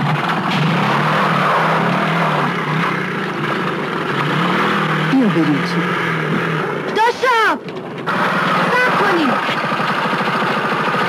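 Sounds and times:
motorcycle engine revving: 0:00.0 - 0:11.0.

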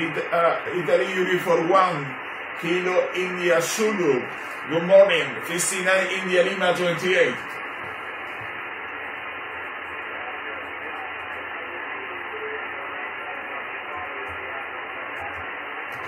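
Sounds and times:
radio static hiss: 0:00.0 - 0:16.0
weak distant voice on radio: 0:09.0 - 0:16.0.

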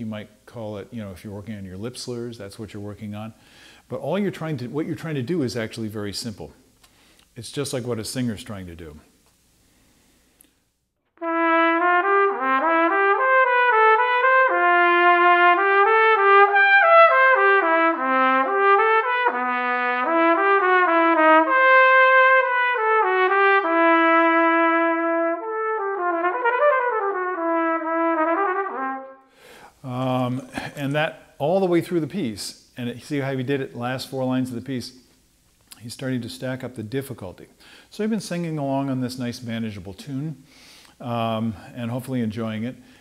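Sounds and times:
solo trumpet melody: 0:11.2 - 0:29.3.

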